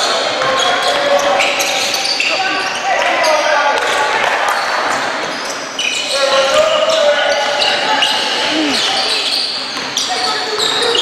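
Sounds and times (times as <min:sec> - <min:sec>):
sneakers squeaking: 0:00.0 - 0:03.4, 0:04.6 - 0:11.0
voices calling out: 0:05.9 - 0:09.4.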